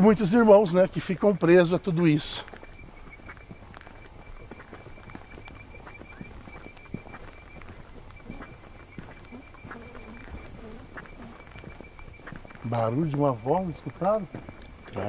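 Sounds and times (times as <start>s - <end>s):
footsteps on asphalt: 0.0s - 15.0s
insects chirping: 0.0s - 15.0s.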